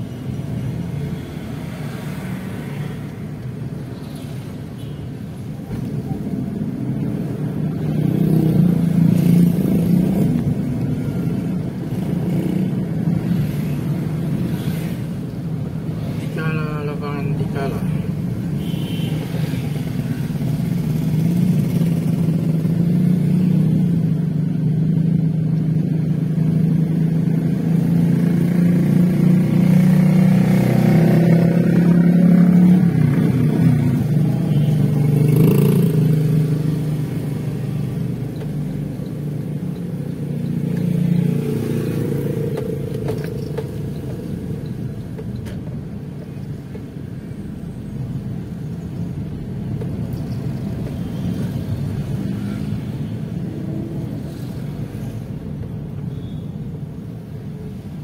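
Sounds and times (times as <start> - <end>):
road noise: 0.0 - 58.0
vehicle engine: 5.4 - 56.3.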